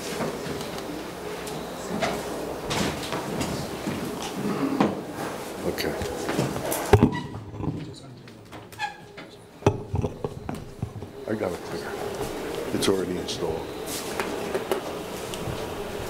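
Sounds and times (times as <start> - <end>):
murmur of voices in a hall: 0.0 - 16.0.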